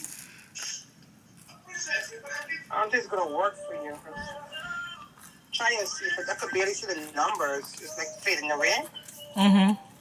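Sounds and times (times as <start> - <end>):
crunching toasted sandwich: 0.0 - 2.6
chewing: 3.9 - 9.8.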